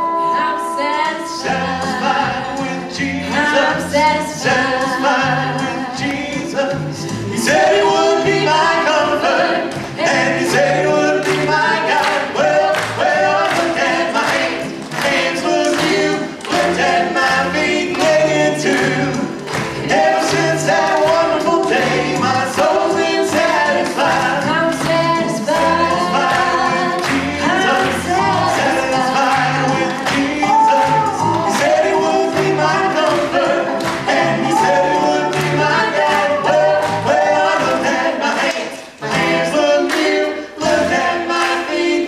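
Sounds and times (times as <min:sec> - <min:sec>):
woman and man singing: 0:00.0 - 0:19.3, 0:19.9 - 0:42.0
instrumental accompaniment with beat: 0:00.0 - 0:42.0.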